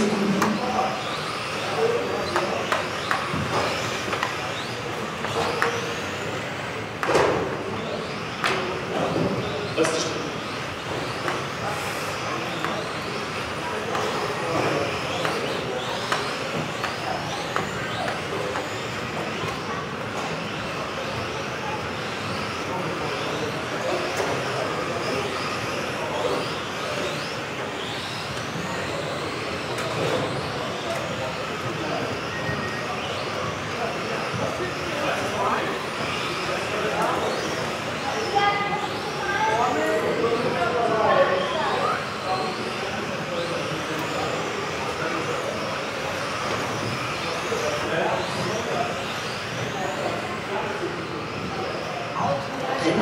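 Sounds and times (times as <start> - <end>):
model car motors whining: 0.0 - 53.0.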